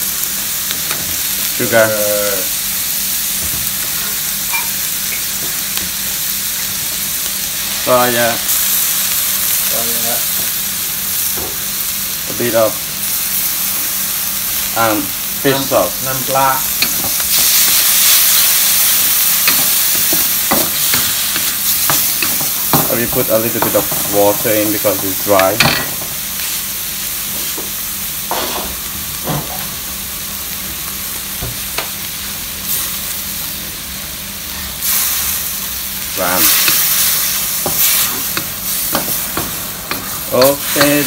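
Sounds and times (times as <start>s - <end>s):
food sizzling in a wok: 0.0s - 41.0s.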